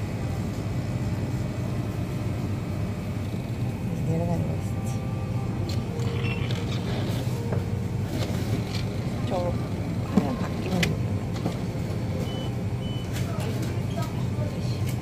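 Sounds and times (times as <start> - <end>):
espresso machine humming: 0.0 - 12.9.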